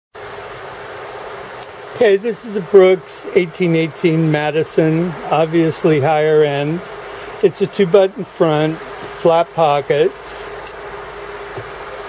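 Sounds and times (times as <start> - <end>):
even hiss: 0.3 - 12.0.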